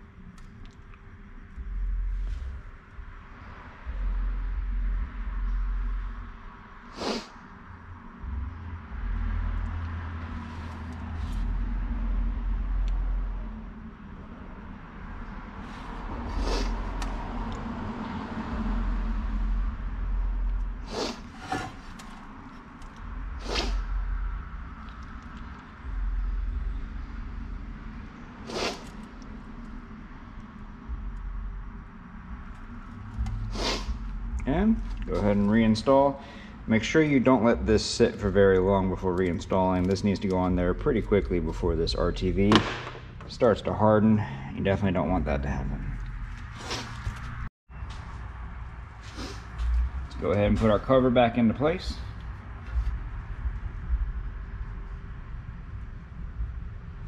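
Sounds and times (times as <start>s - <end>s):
low rumbling handling sounds: 18.6s - 44.3s, 44.9s - 55.8s.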